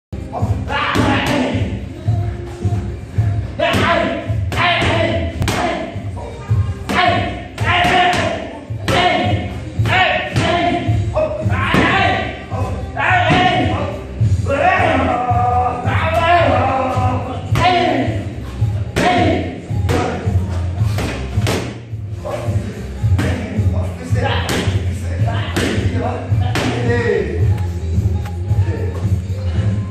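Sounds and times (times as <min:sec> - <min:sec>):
background music with steady beat: 0:00.2 - 0:29.9.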